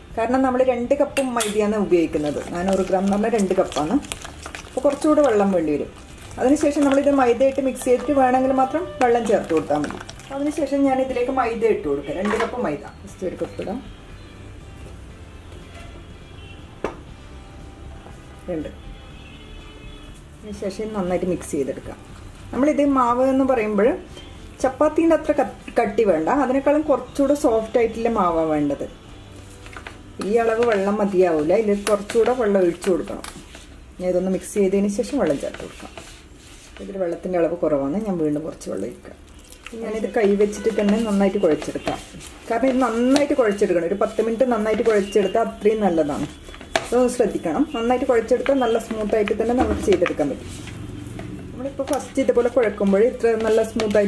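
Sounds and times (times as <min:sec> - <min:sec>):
woman talking: 0:00.0 - 0:04.2, 0:04.8 - 0:13.9, 0:18.4 - 0:18.8, 0:20.4 - 0:29.0, 0:30.2 - 0:33.3, 0:34.0 - 0:35.8, 0:36.8 - 0:50.6, 0:51.6 - 0:54.0
quiet background music: 0:00.0 - 0:54.0
dough stirred in plastic bowl: 0:01.9 - 0:11.4, 0:29.4 - 0:54.0.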